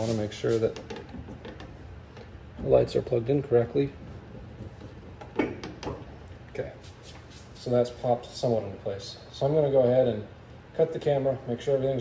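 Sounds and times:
plastic knocks: 4.4 - 6.1.

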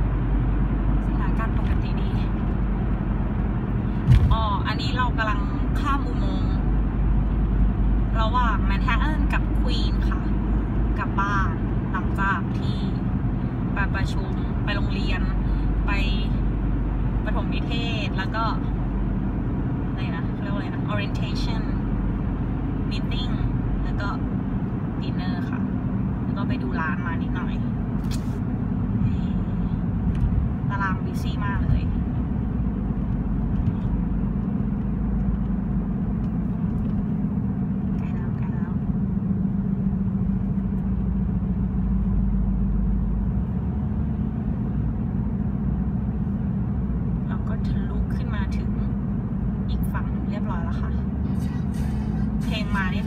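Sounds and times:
car road and engine noise: 0.0 - 53.0.

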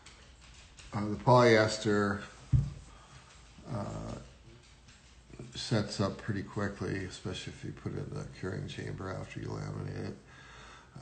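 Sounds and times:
man saying uh: 3.7 - 4.3, 5.4 - 10.2.

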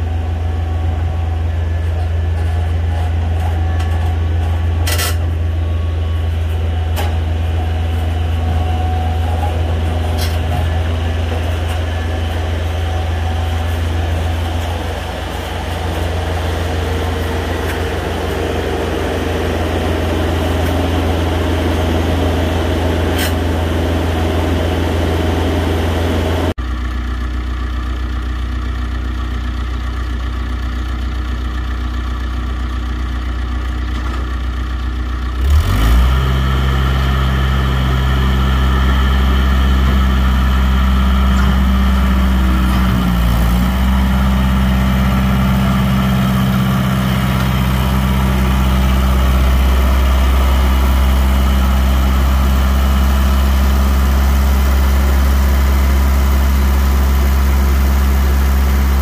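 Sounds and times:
loader engine revving: 0.0 - 26.6, 35.3 - 59.0.

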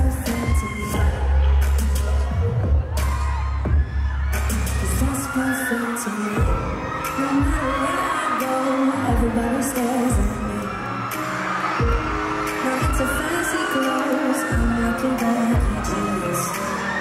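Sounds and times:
woman singing into a microphone: 0.0 - 1.8, 4.5 - 11.4, 12.5 - 17.0
live pop music: 0.0 - 17.0
deep drum thumps: 2.5 - 4.1, 6.4 - 6.8, 10.1 - 10.5.

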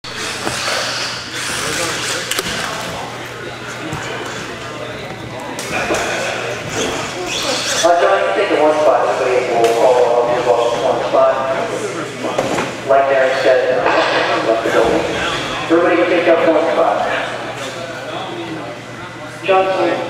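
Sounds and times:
echoing indistinct chatter: 0.0 - 20.0.

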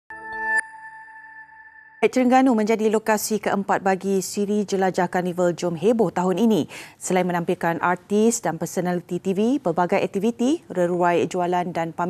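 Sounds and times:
synth chord: 0.1 - 2.0
high steady tone: 0.1 - 2.4.

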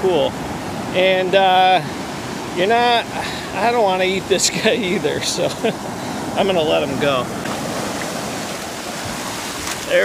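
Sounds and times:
surf washing over sand: 0.0 - 10.0.

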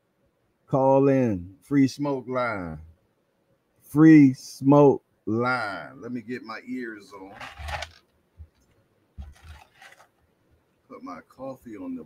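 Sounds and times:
microphone handling bumps: 7.3 - 10.1.

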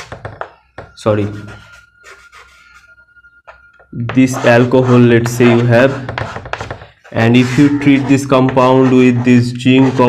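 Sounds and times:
chalk taps: 0.0 - 2.8, 3.4 - 10.0
chalk scraping on blackboard: 1.1 - 3.0, 4.0 - 10.0.

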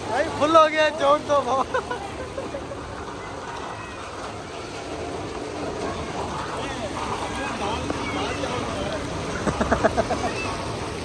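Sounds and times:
rain falling on water: 0.0 - 11.0.

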